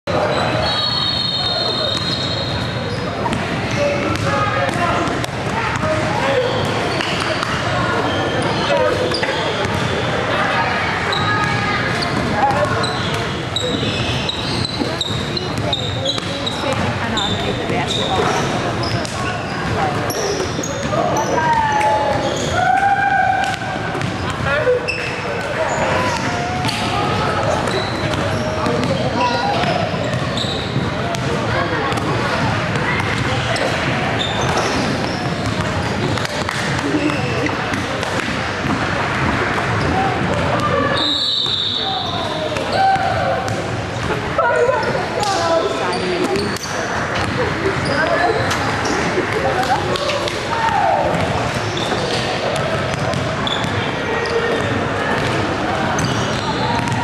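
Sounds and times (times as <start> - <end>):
hubbub of voices: 0.0 - 57.0.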